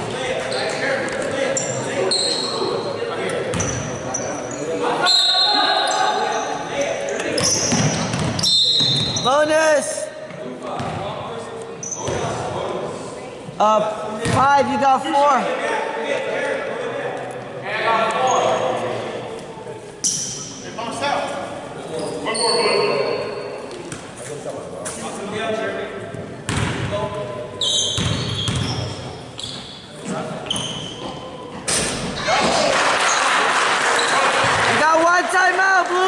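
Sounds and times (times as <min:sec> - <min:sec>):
sneaker squeaks: 0:00.5 - 0:02.9, 0:03.5 - 0:09.5, 0:11.7 - 0:12.4, 0:18.2 - 0:18.8, 0:20.0 - 0:20.6, 0:21.9 - 0:24.2, 0:27.6 - 0:33.2
crowd clapping and cheering: 0:32.4 - 0:36.0.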